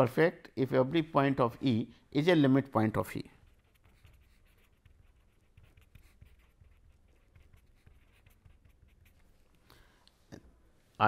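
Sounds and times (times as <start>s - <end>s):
pen scratching on paper: 3.4s - 9.5s.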